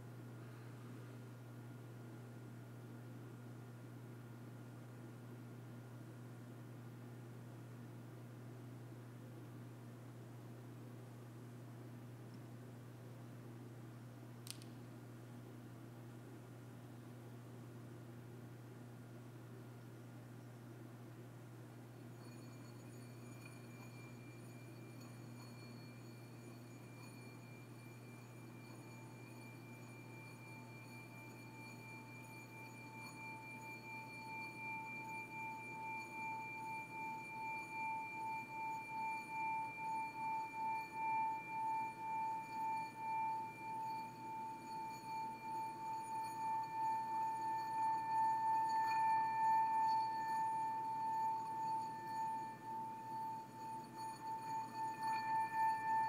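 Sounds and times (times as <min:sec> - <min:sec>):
singing bowl ringing: 0:21.8 - 0:56.0.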